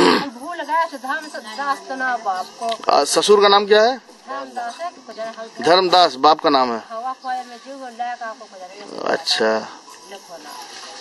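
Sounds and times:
interview speech: 0.0s - 10.9s.

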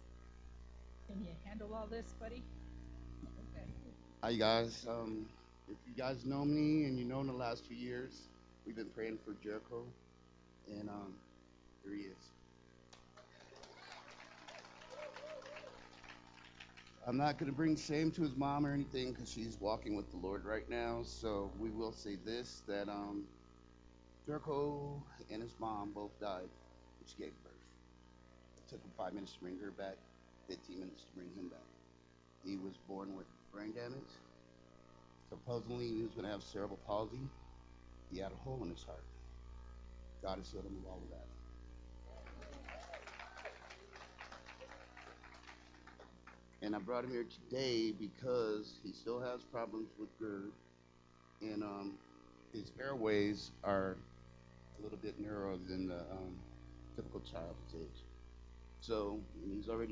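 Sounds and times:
low steady hum: 0.0s - 59.9s.

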